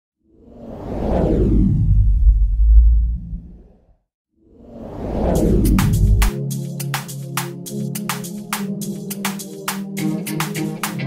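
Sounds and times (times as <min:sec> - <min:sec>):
whoosh into deep rumble: 0:00.4 - 0:04.0, 0:04.6 - 0:06.3.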